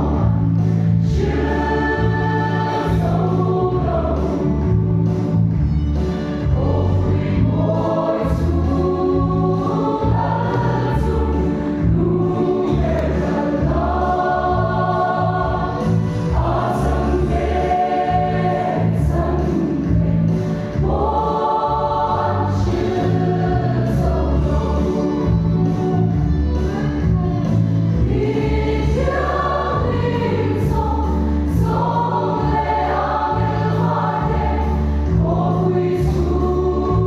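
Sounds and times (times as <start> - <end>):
church choir singing a hymn: 0.0 - 37.0
low steady accompaniment: 0.0 - 37.0.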